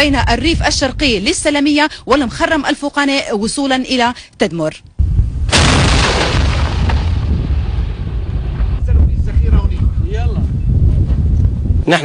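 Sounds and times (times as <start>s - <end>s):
steady low rumble: 4.9s - 11.8s
heavy gun firing echo: 5.5s - 8.5s.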